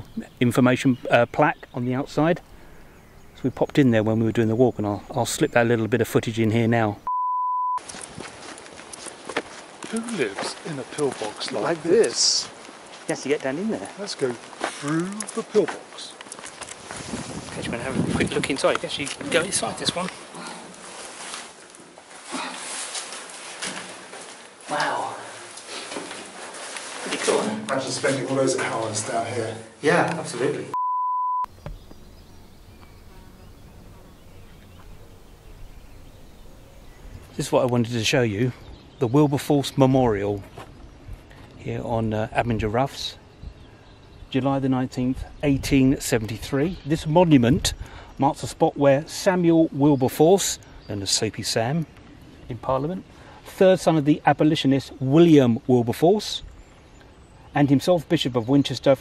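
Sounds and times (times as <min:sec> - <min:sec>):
steady high test tone beep: 0:07.1 - 0:07.8, 0:30.7 - 0:31.5
insects buzzing: 0:31.5 - 0:37.8.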